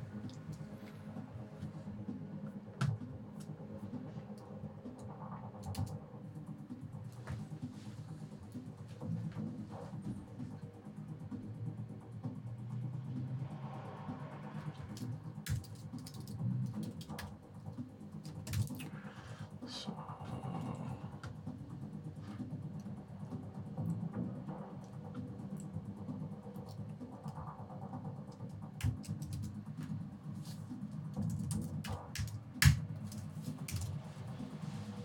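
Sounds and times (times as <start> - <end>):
soft background music: 0.0 - 35.0
computer keyboard keystrokes: 14.9 - 17.3, 28.8 - 29.6.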